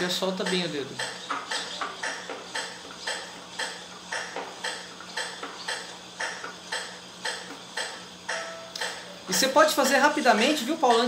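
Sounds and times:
metronome clicking: 0.4 - 3.7, 6.7 - 9.5.

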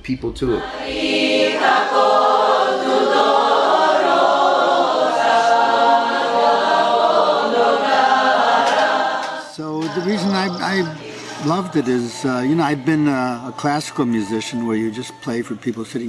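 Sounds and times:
group singing a cappella: 0.6 - 13.8.

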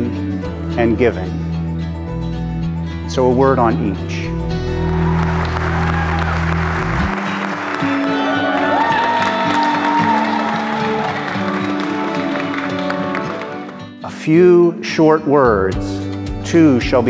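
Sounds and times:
music with long held notes: 0.0 - 14.6
crowd applauding: 4.7 - 13.9.

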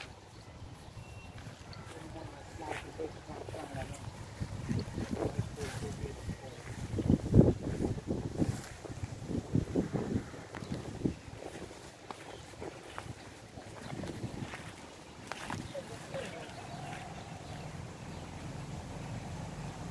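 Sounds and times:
wind rumble on microphone: 0.0 - 19.9.

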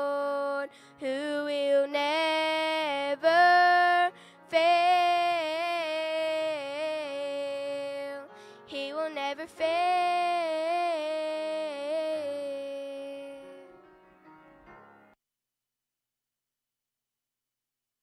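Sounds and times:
woman singing gospel song: 0.0 - 13.6.

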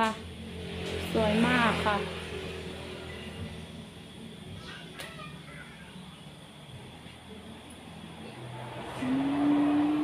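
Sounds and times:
motor vehicle passing: 0.0 - 3.8, 8.1 - 10.0.

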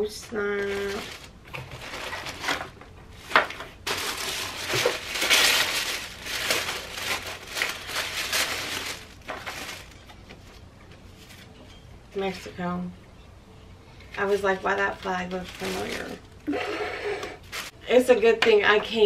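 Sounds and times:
tissue paper crinkling: 0.4 - 11.5, 14.2 - 16.3, 17.4 - 17.8.

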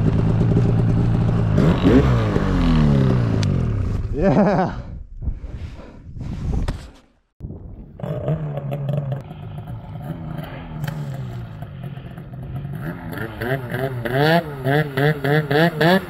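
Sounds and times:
snowmobile engine revving: 0.0 - 4.6, 8.0 - 16.0.

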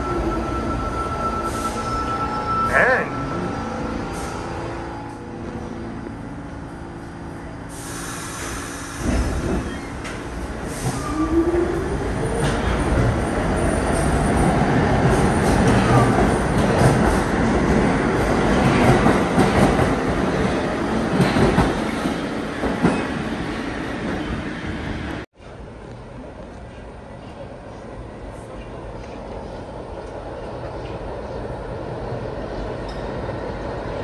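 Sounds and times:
subway train passing: 0.0 - 34.0.

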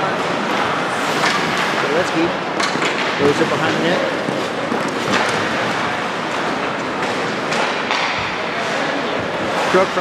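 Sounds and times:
hockey sticks and puck clacking: 0.0 - 10.0.

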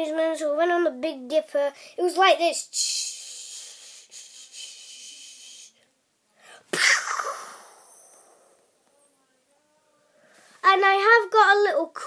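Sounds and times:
child making breathy hiss: 2.7 - 5.8.

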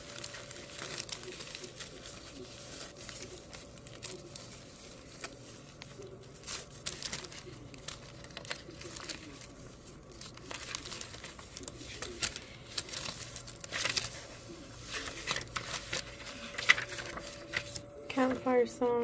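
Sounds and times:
paper rustling and crinkling: 0.0 - 19.0.

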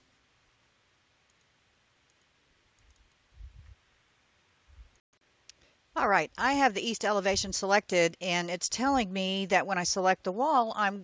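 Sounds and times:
computer mouse clicks: 1.3 - 3.2.

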